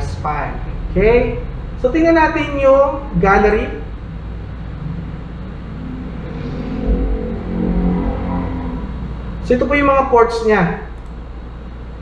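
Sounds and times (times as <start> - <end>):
engine rumbling: 0.0 - 12.0
steady low hum: 0.0 - 12.0.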